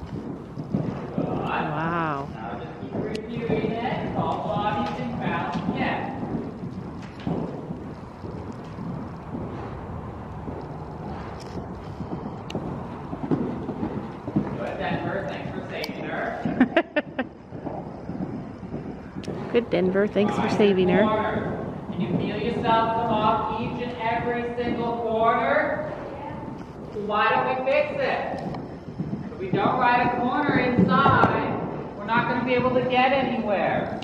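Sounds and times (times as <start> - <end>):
horse hoofbeats on dirt: 0.0 - 34.0
indistinct voices talking: 1.4 - 2.4, 19.0 - 21.4.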